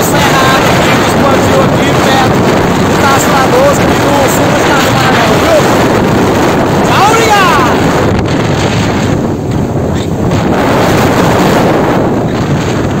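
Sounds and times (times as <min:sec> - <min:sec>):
truck road noise: 0:00.0 - 0:13.0
wind buffeting microphone: 0:00.0 - 0:13.0.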